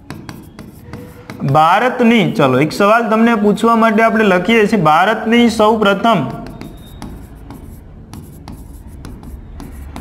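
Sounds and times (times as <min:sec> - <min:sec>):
marker pen scratching on board: 0:00.0 - 0:02.2, 0:06.1 - 0:10.0
marker tip ticks: 0:06.3 - 0:10.0.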